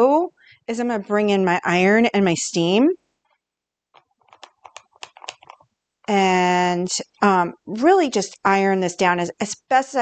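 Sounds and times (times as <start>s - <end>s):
small irregular clicks and taps: 3.2s - 5.7s.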